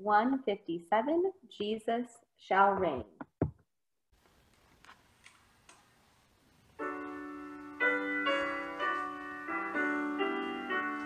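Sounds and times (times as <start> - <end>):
person speaking: 0.0 - 3.5
piano hymn accompaniment: 6.8 - 11.0.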